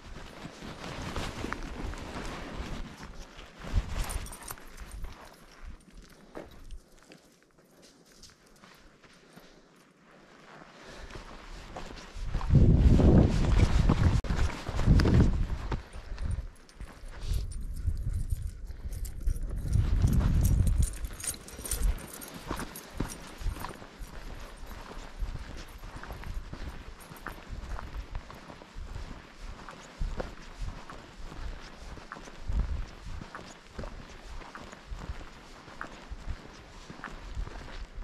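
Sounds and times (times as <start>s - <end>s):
wind rumble on microphone: 0.0s - 5.2s, 11.6s - 38.0s
footsteps on dirt trail: 0.0s - 38.0s.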